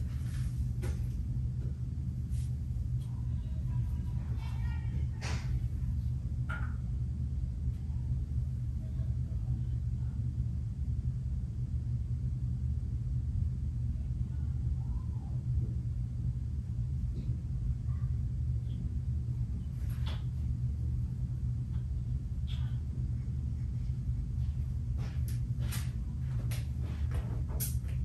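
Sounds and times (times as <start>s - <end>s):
steady low rumble: 0.0s - 28.0s.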